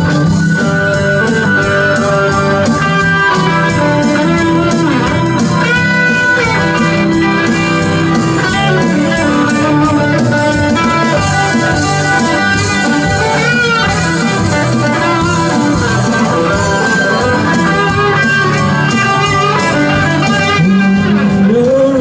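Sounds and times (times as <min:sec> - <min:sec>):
bass: 0:00.0 - 0:22.0
electric guitars: 0:00.0 - 0:22.0
live band playing: 0:00.0 - 0:22.0.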